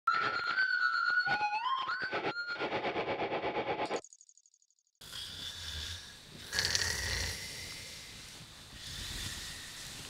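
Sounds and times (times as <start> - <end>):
man snoring: 5.0 - 10.0.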